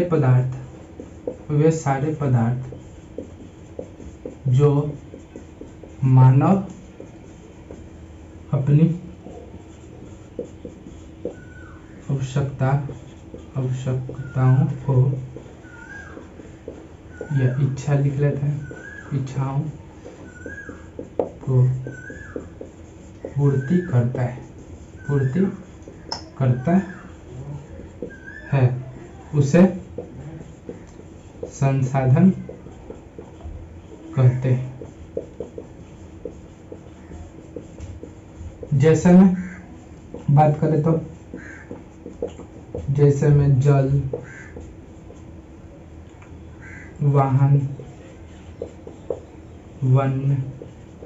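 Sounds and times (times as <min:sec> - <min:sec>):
marker writing on whiteboard: 0:00.0 - 0:51.0.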